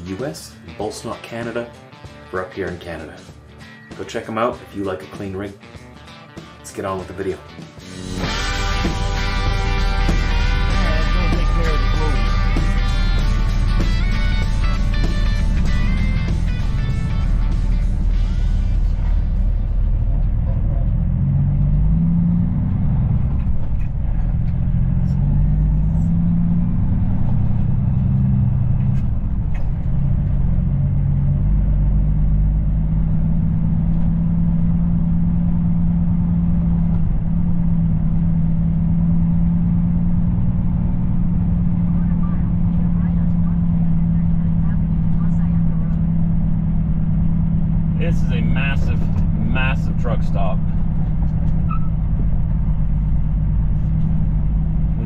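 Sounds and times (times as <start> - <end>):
diesel truck engine humming: 7.6 - 55.0.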